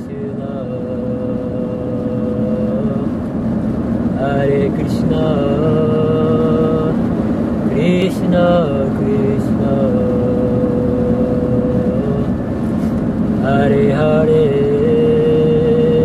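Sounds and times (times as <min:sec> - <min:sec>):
person singing long gliding notes: 0:00.0 - 0:03.1, 0:04.1 - 0:07.0, 0:07.7 - 0:12.4, 0:13.4 - 0:16.0
steady low drone: 0:00.0 - 0:16.0.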